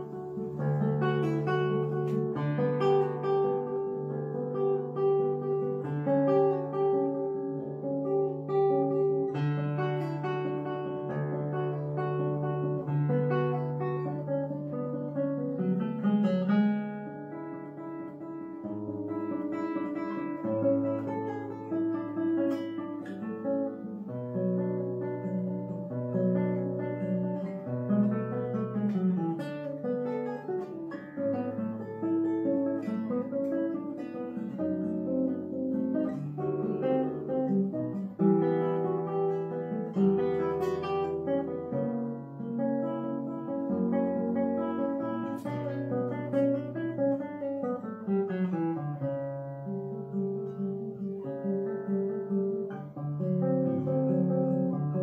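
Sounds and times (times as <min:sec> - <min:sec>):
classical guitar fingerstyle: 0:00.0 - 0:55.0.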